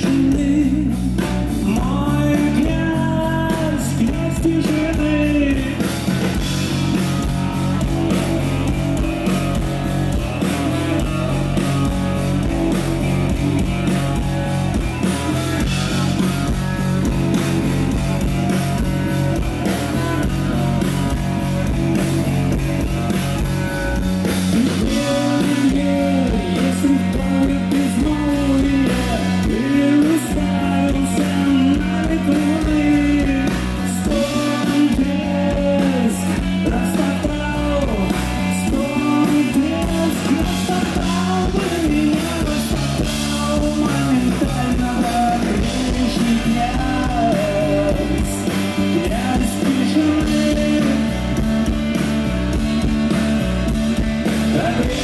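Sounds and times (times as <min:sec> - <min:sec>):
bass guitar: 0:00.0 - 0:55.0
drums: 0:00.0 - 0:55.0
electric guitars: 0:00.0 - 0:55.0.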